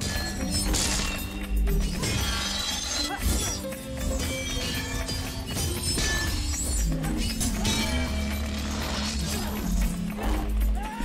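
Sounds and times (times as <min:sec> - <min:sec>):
orchestral score music: 0:00.0 - 0:11.0.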